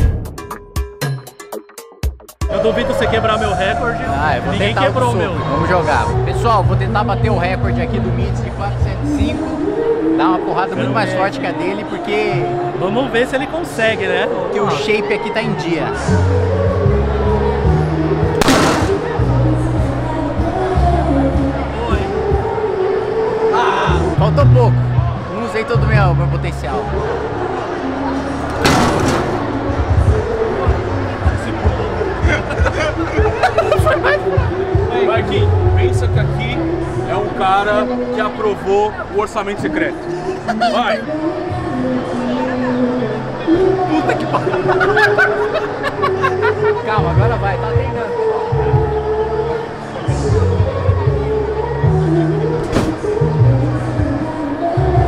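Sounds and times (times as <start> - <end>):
background music with bass line: 0.0 - 9.6
crowd chatter: 2.5 - 55.0
punch slamming arcade machine: 28.6 - 29.6.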